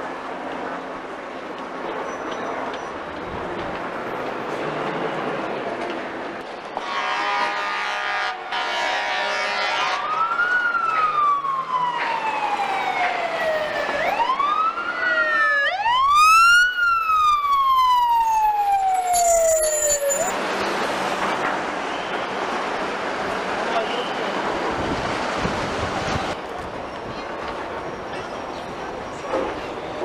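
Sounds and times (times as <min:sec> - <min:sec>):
short loud horn blast: 0:06.8 - 0:10.0
fire engine siren wailing: 0:07.0 - 0:20.4.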